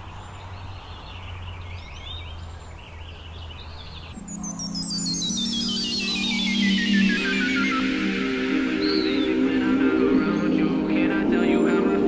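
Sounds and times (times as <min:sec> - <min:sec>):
birds chirping: 0:00.0 - 0:12.0
high notes stepping down: 0:04.2 - 0:12.0
hip-hop beat: 0:04.2 - 0:12.0
synth chords: 0:04.2 - 0:12.0.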